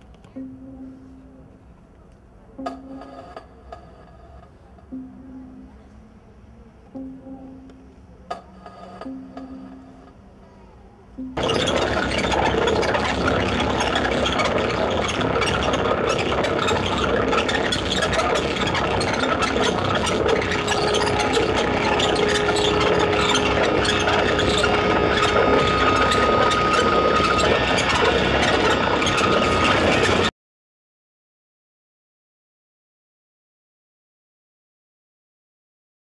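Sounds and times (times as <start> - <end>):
low sustained tone: 0.2 - 1.8, 4.6 - 30.2
higher sustained tone: 0.4 - 1.7, 4.9 - 8.2, 11.2 - 30.2
dense droning noise: 2.6 - 30.3.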